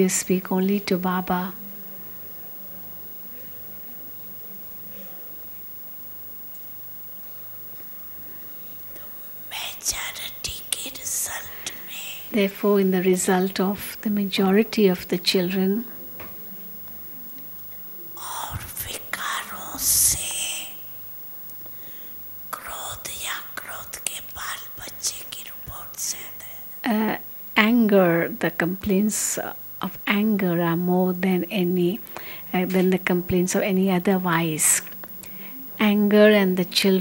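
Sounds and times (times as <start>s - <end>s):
faint low hum: 0.0s - 37.0s
person whispering into a microphone: 8.9s - 12.4s, 18.2s - 20.8s, 22.5s - 26.8s.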